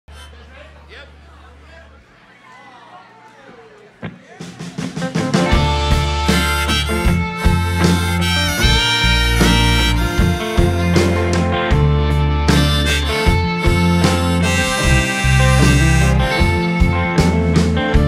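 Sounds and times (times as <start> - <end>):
harmonica: 0.1 - 0.8, 5.0 - 18.0
strummed guitars: 4.0 - 18.0
steady drum beat: 4.1 - 18.0
deep bass notes: 5.4 - 18.0.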